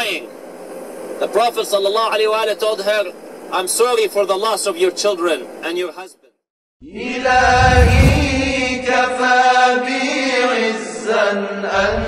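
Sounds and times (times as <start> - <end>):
deep low backing drone: 7.2 - 8.9.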